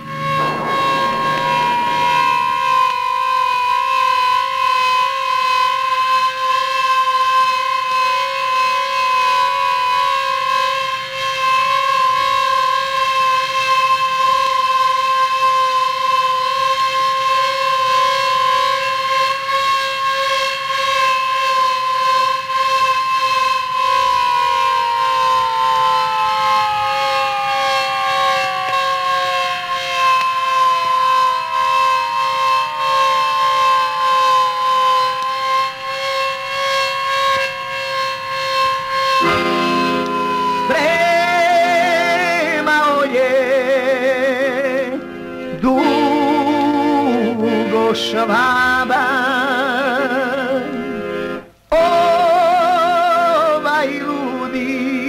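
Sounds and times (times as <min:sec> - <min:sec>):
air-raid siren: 0:00.0 - 0:55.0.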